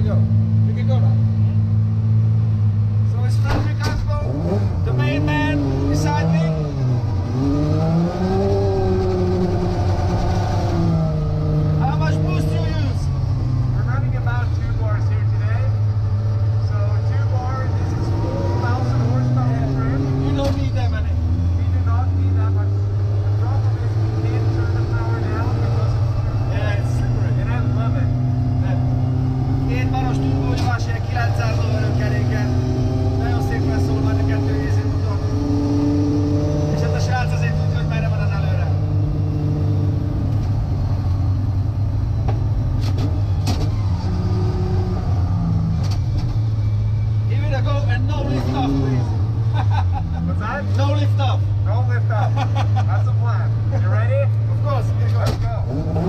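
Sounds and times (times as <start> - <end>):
car engine revving hard: 4.1 - 13.8, 17.0 - 41.0, 47.9 - 51.4, 54.6 - 56.0.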